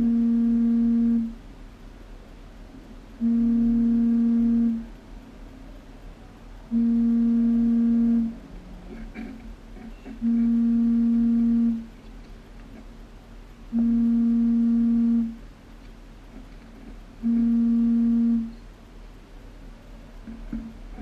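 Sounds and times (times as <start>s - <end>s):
low buzzing tone: 0.0s - 1.4s, 3.2s - 5.0s, 6.6s - 9.2s, 9.9s - 12.0s, 13.5s - 15.4s, 17.1s - 18.6s.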